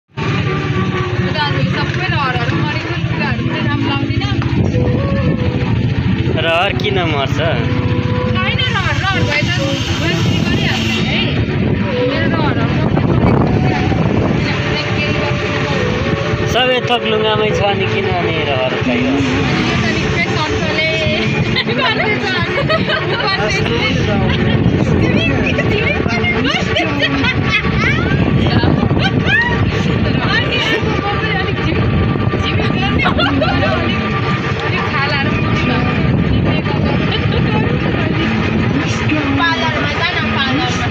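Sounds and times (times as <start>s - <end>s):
passengers talking: 0.1s - 40.9s
road noise: 0.1s - 40.9s
vehicle engine rumble: 0.1s - 40.9s.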